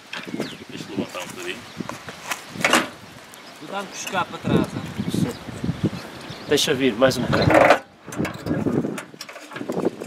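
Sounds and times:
people talking: 0.7 - 1.6, 3.6 - 5.5, 6.5 - 7.6.

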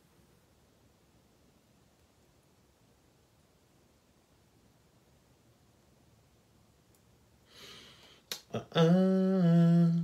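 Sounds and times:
man humming a low note: 8.4 - 10.0.

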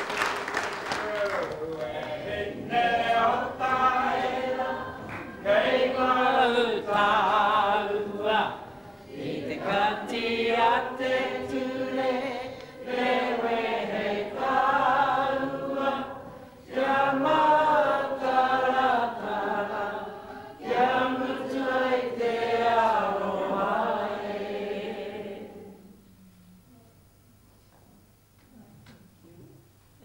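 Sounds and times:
crowd singing slow song: 1.6 - 26.1.

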